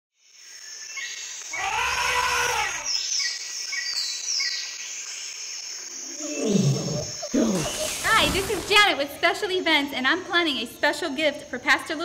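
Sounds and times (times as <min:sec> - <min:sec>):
long arching animal call: 0:01.5 - 0:02.9, 0:06.0 - 0:08.1.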